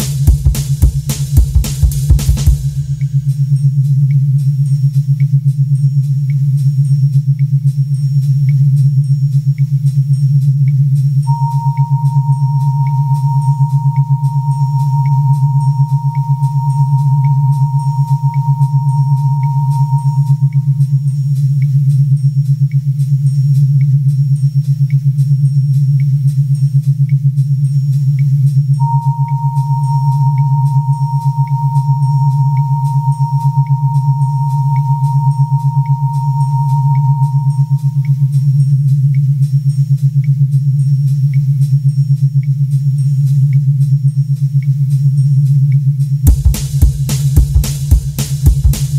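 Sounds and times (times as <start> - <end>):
pulsing synth bass drone: 11.2 - 27.9, 28.8 - 39.4, 46.3 - 48.9
high held synth tone: 11.3 - 21.1, 28.8 - 38.5, 46.3 - 48.9.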